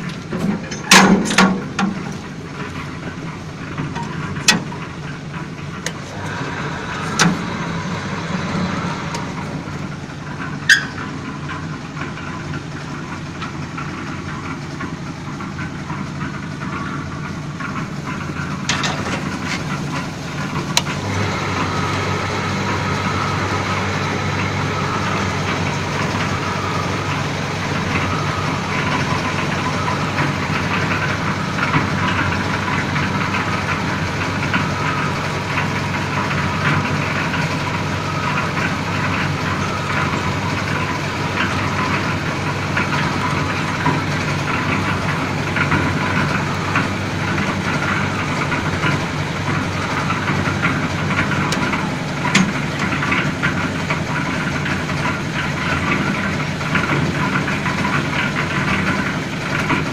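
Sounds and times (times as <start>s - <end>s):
construction machinery drone: 0.0s - 59.9s.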